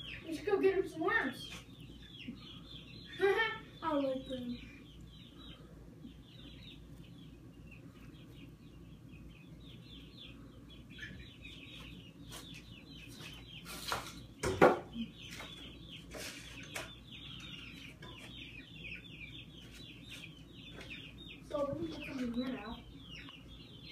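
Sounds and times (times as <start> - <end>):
nestling birds begging chirps: 0.0 - 23.9.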